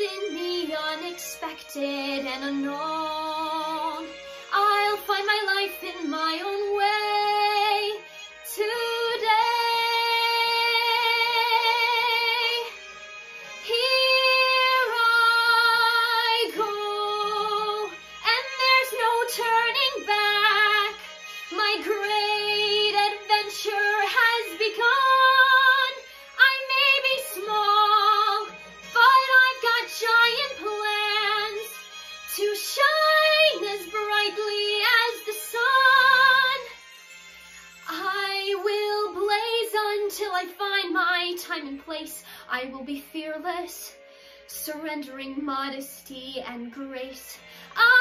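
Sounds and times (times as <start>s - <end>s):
woman singing unaccompanied: 0.0s - 12.7s, 13.7s - 36.7s, 37.9s - 43.9s, 44.5s - 48.0s.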